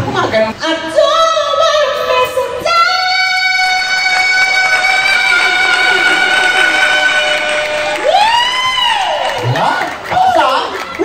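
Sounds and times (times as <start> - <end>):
person singing through microphone: 2.2 - 8.4.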